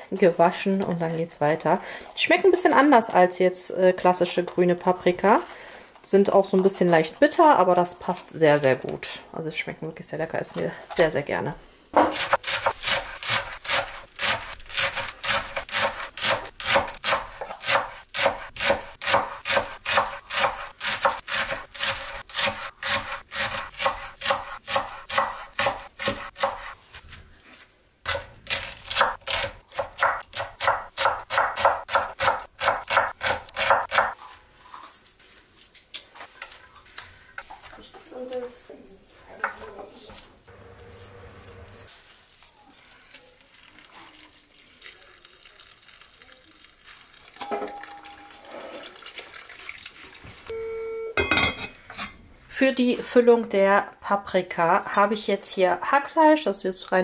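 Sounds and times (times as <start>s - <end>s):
knife chopping on wooden board: 12.0s - 26.7s, 28.1s - 34.2s.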